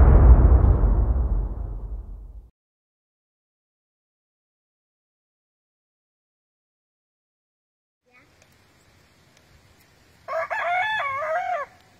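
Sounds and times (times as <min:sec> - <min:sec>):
rooster crowing: 0:10.3 - 0:11.9.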